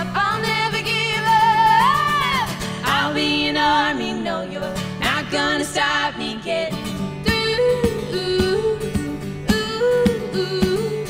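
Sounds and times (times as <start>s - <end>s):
strummed acoustic guitar: 0.0s - 11.0s
women singing in harmony: 0.0s - 11.0s.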